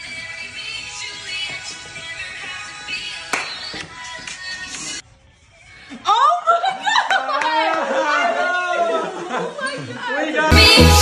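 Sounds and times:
excited voices: 0:06.0 - 0:11.0
background music with held tones: 0:10.5 - 0:11.0.

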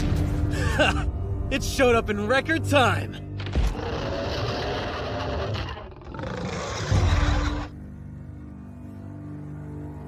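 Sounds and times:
giant monster roar: 0:03.6 - 0:07.8.

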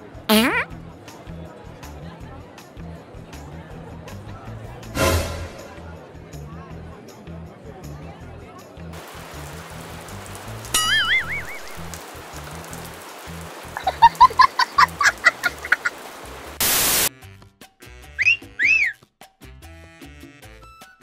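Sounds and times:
loud burst of hiss: 0:16.6 - 0:17.1
swooping whistle-like tones: 0:18.2 - 0:19.0.

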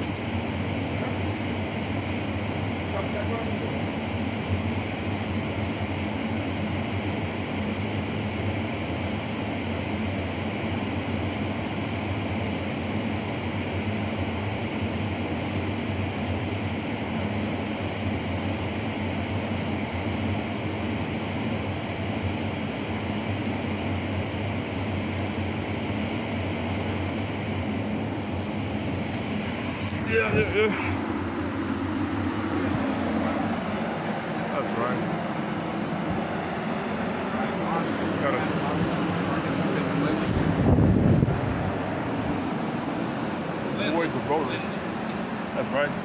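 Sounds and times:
low hum: 0:24.6 - 0:46.0
low rumble: 0:29.3 - 0:43.8.

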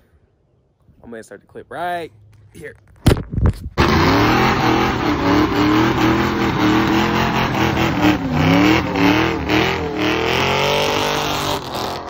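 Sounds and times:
car engine revving hard: 0:03.8 - 0:12.0.

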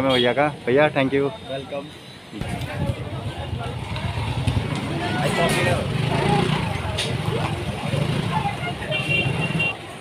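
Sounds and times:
voices of passers-by: 0:00.0 - 0:10.0.

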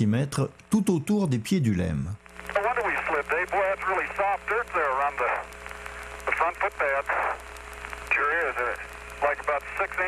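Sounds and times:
radio hiss and hum: 0:00.0 - 0:10.0
tinny radio speech: 0:02.5 - 0:05.6, 0:06.2 - 0:10.0.

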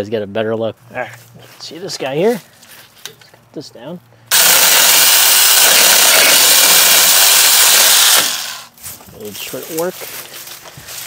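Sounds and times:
chainsaw cutting tree trunk: 0:04.3 - 0:08.7.

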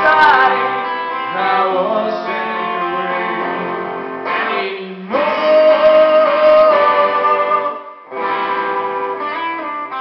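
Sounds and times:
electric guitar chords strummed: 0:00.0 - 0:10.0.

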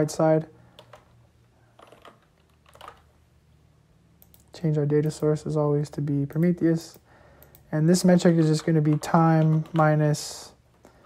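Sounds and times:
computer keyboard keystrokes: 0:00.8 - 0:01.1, 0:01.8 - 0:03.1, 0:08.3 - 0:10.0.

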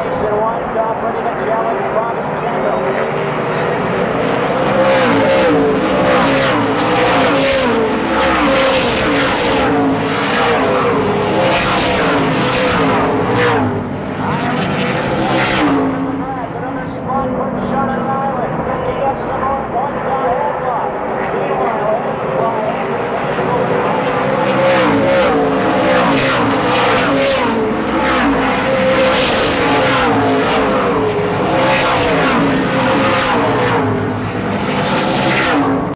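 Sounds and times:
race cars passing: 0:00.0 - 0:35.9.

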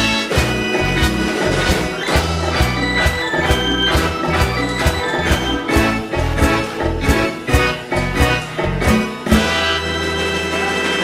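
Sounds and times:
sustained organ-like keyboard chords: 0:00.0 - 0:10.6
bass guitar: 0:00.0 - 0:11.0
drums keeping steady beat: 0:00.0 - 0:11.0.

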